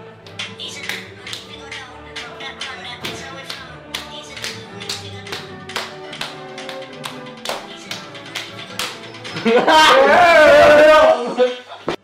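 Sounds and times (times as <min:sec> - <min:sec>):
song with steady beat: 0:00.2 - 0:09.8
hand claps: 0:00.3 - 0:09.3.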